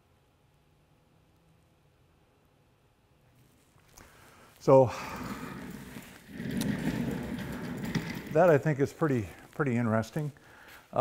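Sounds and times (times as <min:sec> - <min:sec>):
things scraping across concrete floor: 0:03.6 - 0:11.0.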